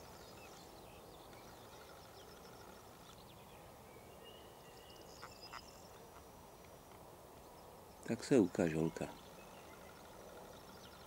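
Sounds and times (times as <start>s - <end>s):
faint outdoor ambience: 0.0s - 11.0s.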